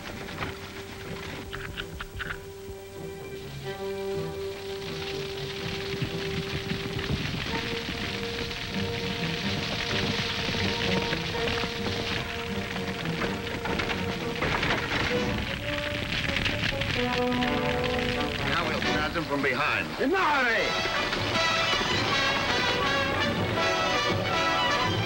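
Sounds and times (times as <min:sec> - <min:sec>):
film score with held notes: 0:00.0 - 0:25.0
grass fire crackling: 0:00.0 - 0:25.0.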